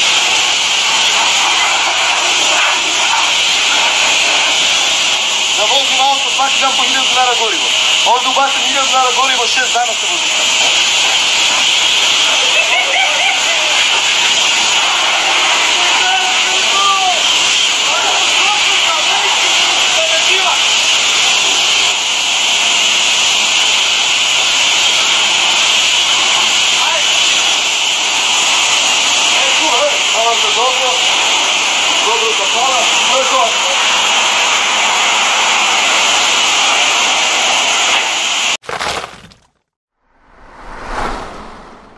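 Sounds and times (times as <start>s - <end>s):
high-pressure water jet hissing: 0.0s - 38.6s.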